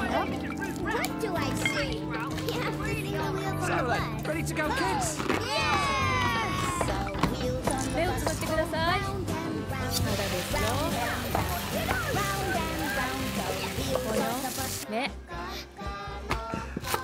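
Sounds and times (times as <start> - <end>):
music: 0.0 - 17.0.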